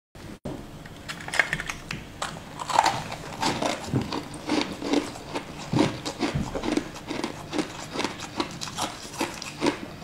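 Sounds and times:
person chewing crunchy sweets: 1.8s - 10.0s.

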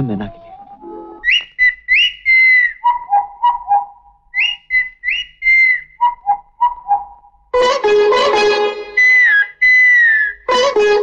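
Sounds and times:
person whistling bird calls: 1.2s - 7.1s, 9.0s - 10.4s.

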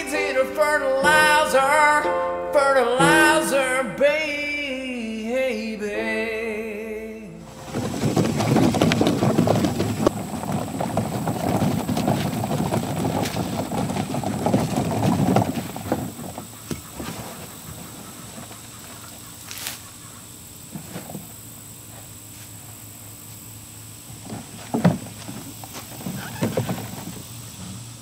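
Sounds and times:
plastic wagon wheels rattling: 7.5s - 22.2s, 22.8s - 28.0s
faint rustles and snaps: 19.4s - 19.9s.

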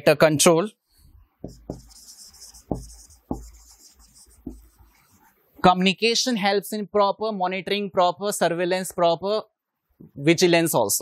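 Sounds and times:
marker writing on whiteboard: 1.0s - 5.4s
pen tip knocking on board: 1.4s - 2.0s, 2.6s - 3.7s, 4.4s - 4.7s.

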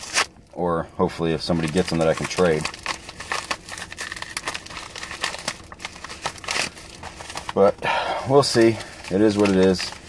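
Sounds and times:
paper mailer crinkling: 1.4s - 10.0s.

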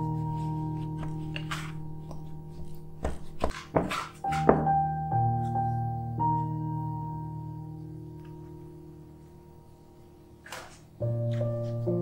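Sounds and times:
scraper scraping glass bowl: 3.2s - 4.6s.

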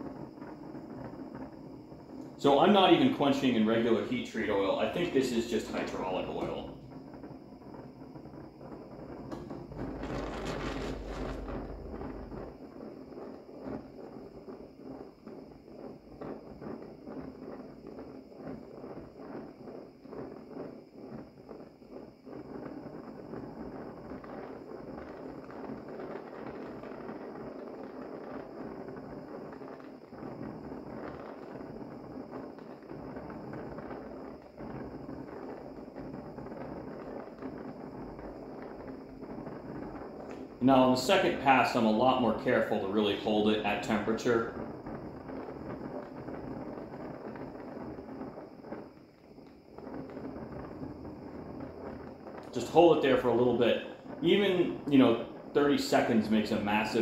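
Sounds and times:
torch flame hissing and crackling: 0.0s - 57.0s.

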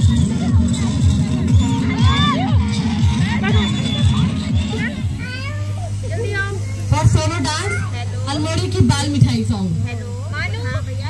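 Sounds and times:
children calling and chattering: 0.0s - 11.0s
steady low hum: 0.0s - 11.0s.

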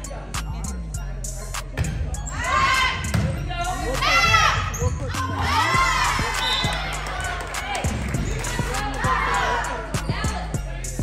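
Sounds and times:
girls calling out: 3.7s - 7.0s.

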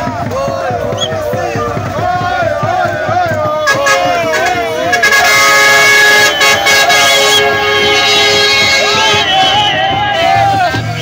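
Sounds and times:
crowd shouting and chanting: 0.0s - 11.0s
vehicle horn blast: 3.6s - 11.0s.

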